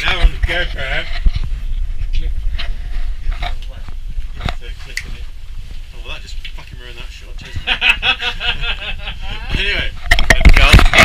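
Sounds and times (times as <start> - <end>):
low rumble: 0.0 - 11.0
camera handling knocks and rustles: 10.0 - 11.0.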